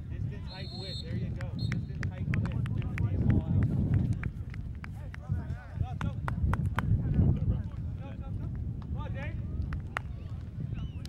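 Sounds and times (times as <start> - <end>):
distant shouts and chatter: 0.0 - 11.0.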